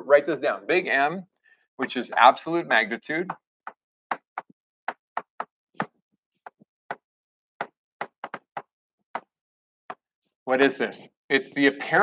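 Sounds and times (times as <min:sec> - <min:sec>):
chalk tapping on blackboard: 0:01.8 - 0:05.5, 0:07.6 - 0:09.3.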